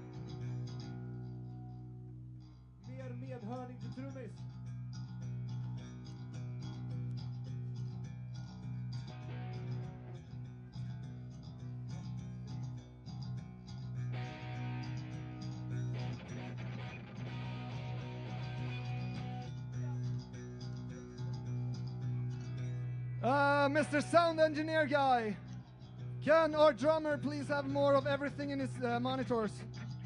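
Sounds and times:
electric guitars through amplifiers: 0.0 - 30.0.

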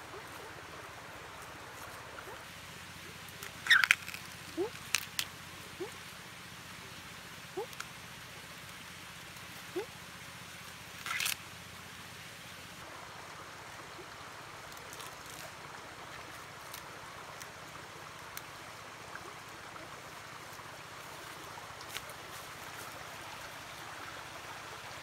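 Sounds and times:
outdoor background hiss: 0.0 - 25.0.

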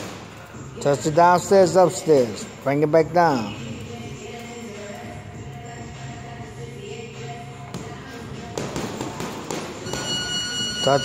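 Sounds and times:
boxing gloves punching heavy bag: 7.7 - 10.5.

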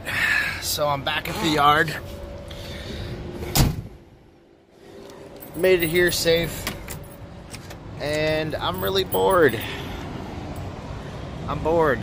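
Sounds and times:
low outdoor background: 0.0 - 12.0
loud thump: 3.5 - 4.0.

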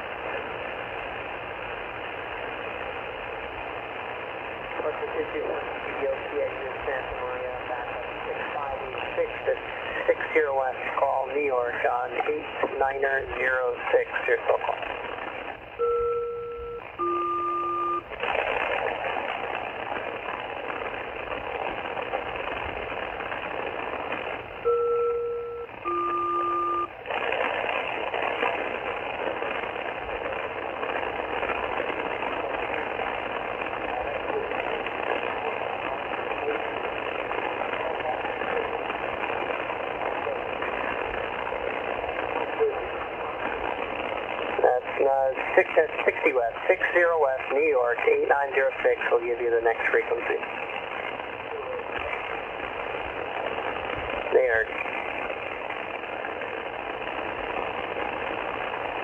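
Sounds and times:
radio band noise hiss: 0.0 - 59.0
garbled radio voice: 4.8 - 14.9, 44.6 - 50.5, 54.3 - 54.9
two-tone radio call chords: 15.7 - 18.1, 24.6 - 27.0.

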